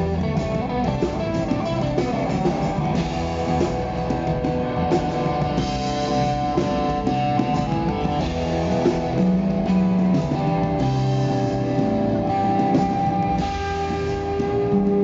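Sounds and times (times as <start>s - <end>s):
drum kit: 0.0s - 15.0s
electric guitar sustained notes: 0.0s - 15.0s.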